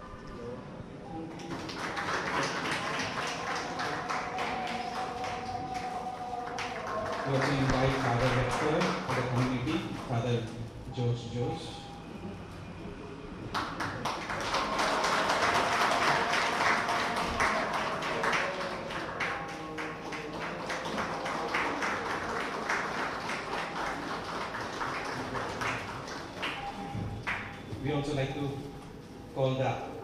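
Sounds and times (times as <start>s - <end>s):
audience applause: 1.3s - 10.2s, 13.5s - 27.5s.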